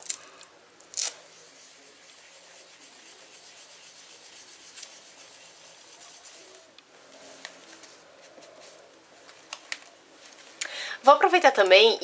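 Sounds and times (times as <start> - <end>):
ink tool rubbing on paper: 1.5 - 8.8.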